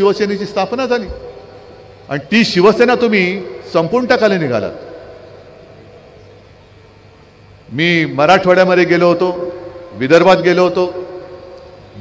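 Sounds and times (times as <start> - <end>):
faint steady hiss: 0.0 - 12.0
low sound system hum: 0.0 - 12.0.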